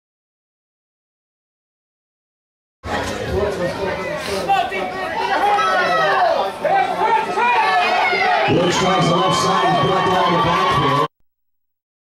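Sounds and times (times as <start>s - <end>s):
chatter of voices: 2.8s - 11.1s.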